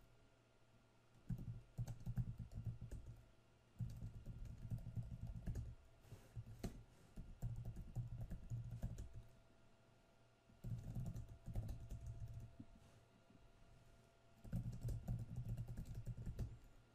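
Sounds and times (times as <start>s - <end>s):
computer keyboard typing: 1.2s - 3.2s, 3.8s - 5.8s, 6.6s - 9.2s, 10.6s - 12.5s, 14.4s - 16.6s.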